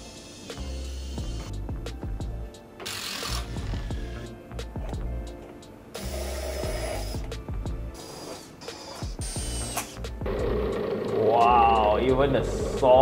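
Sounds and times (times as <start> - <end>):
background music: 0.0 - 13.0
cordless drill driving a screw: 0.1 - 1.5, 2.8 - 4.3, 7.9 - 10.0.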